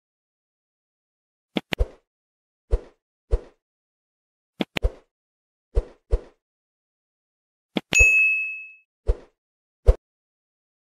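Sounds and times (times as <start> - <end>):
bright bell ding: 8.0 - 8.8.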